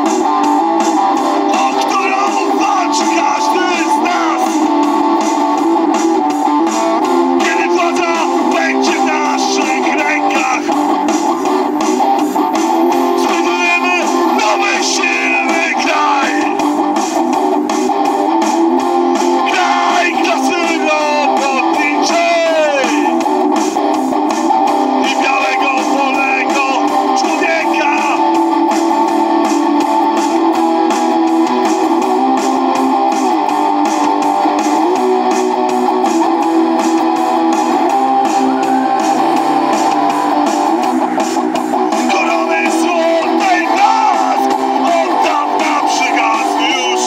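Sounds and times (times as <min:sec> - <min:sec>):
electric guitar through speakers: 0:00.0 - 0:47.0
man singing: 0:01.4 - 0:04.7, 0:07.4 - 0:11.0, 0:13.0 - 0:16.7, 0:19.4 - 0:23.2, 0:25.0 - 0:28.4, 0:42.0 - 0:47.0.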